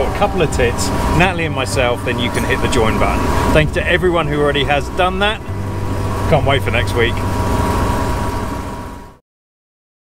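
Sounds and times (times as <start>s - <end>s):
generator humming with whine: 0.0s - 9.2s.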